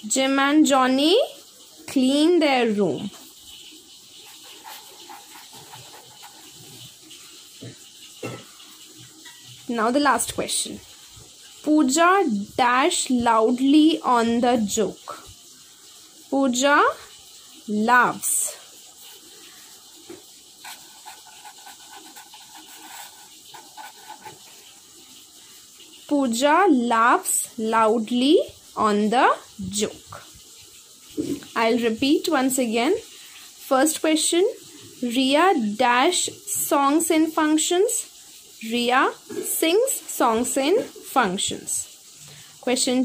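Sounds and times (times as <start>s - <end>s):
felt-tip pen scratching on paper: 4.2s - 6.9s, 20.6s - 24.6s.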